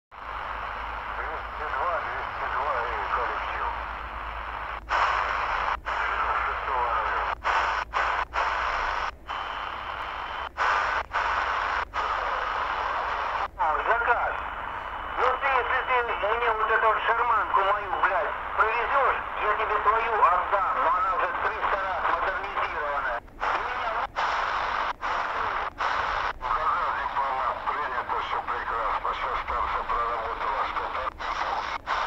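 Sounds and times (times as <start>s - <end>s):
distorted radio voices: 0.2s - 32.0s
radio static: 0.2s - 32.0s.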